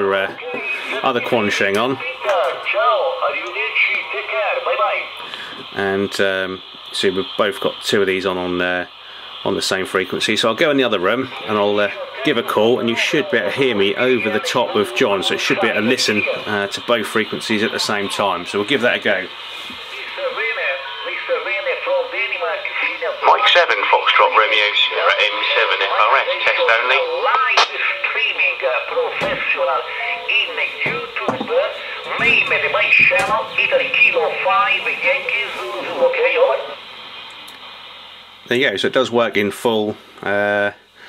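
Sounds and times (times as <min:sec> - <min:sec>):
tinny man's voice over radio: 0:00.0 - 0:05.1, 0:05.7 - 0:19.3, 0:20.0 - 0:36.8.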